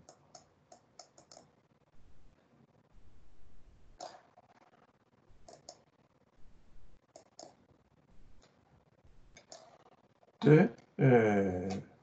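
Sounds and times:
computer mouse clicks: 0.0 - 1.6, 4.0 - 4.3, 5.4 - 5.8, 7.1 - 7.6, 9.3 - 9.8.

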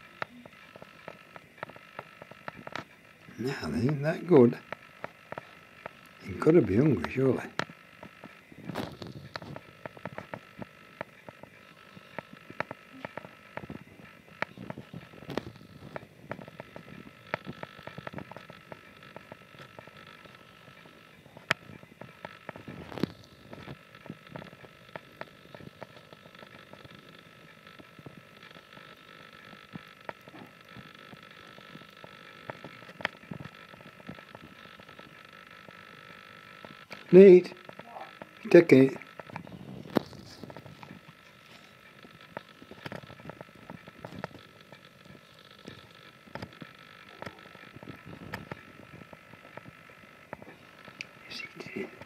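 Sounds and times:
faint steady high hum: 0.0 - 52.0.

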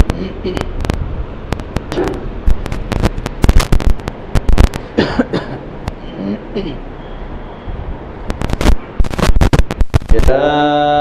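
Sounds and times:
sharp pops and crackles: 0.0 - 5.0, 5.8 - 6.0, 8.2 - 10.3.

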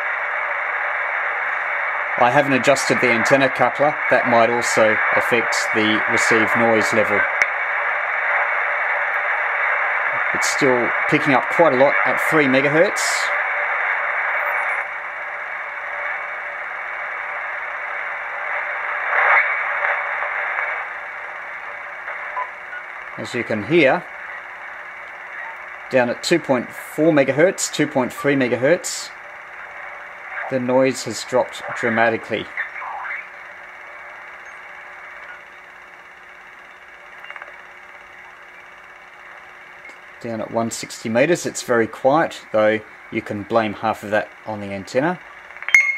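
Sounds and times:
radio static hiss: 0.0 - 45.9.

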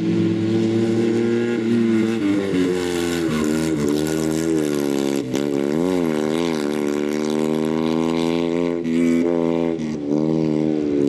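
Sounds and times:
race car engine running hard: 0.0 - 11.0.

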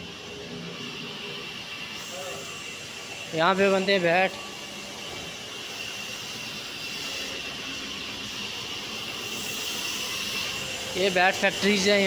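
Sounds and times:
woodworking machinery whirring: 0.0 - 12.0.

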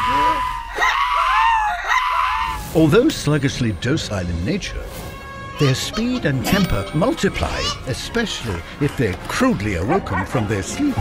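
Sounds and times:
animated creature screaming: 0.0 - 2.7.

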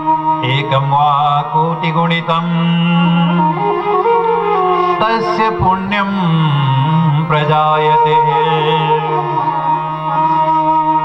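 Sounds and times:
steady held drone: 0.0 - 11.0
person chanting: 0.4 - 4.2, 4.8 - 10.7.

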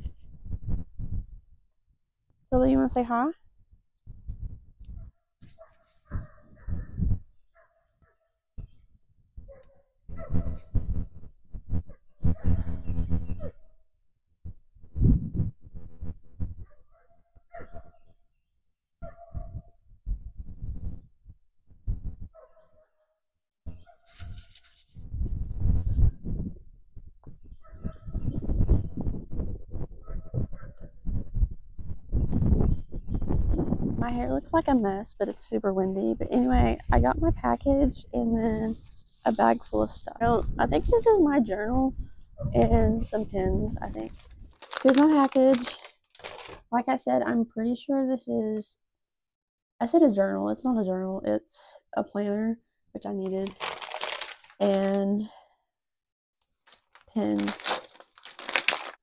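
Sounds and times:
wind gusting against microphone: 24.2 - 44.6.

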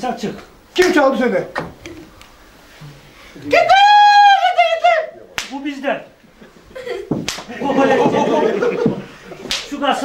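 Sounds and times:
sharp slap: 0.8 - 1.0, 5.4 - 5.7, 7.1 - 7.5, 9.4 - 9.8
men's voices: 7.5 - 10.0.

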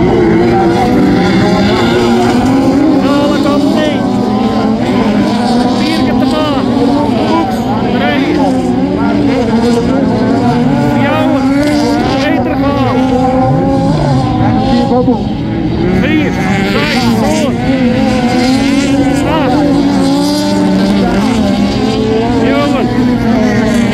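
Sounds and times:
race car engines revving: 0.0 - 23.9.

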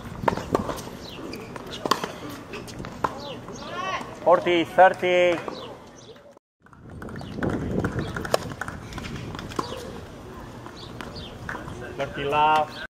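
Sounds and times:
outdoor court ambience: 0.0 - 12.9.

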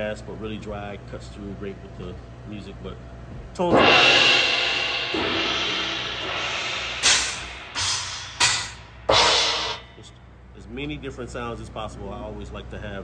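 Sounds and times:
crash cymbal struck: 3.7 - 10.1
short dry cymbal hits: 3.7 - 10.2.

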